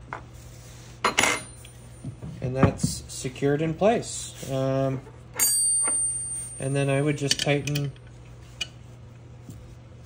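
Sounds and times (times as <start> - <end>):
metal parts clinking: 5.4 - 8.0.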